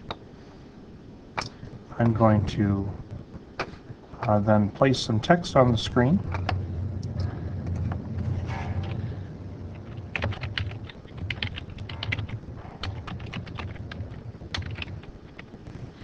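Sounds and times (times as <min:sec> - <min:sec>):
low steady hum: 0:00.0 - 0:16.0
keyboard typing: 0:09.7 - 0:15.6.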